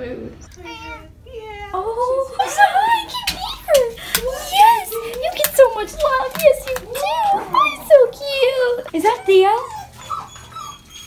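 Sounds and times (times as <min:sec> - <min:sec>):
dog whining: 0:06.6 - 0:11.0.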